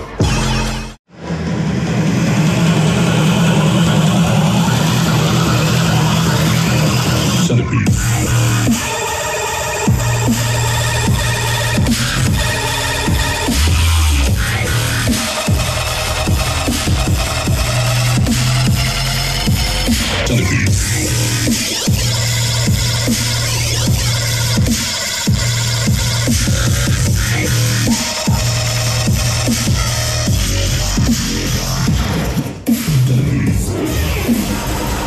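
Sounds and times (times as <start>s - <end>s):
dubstep dance music with heavy bass: 0.0s - 35.0s.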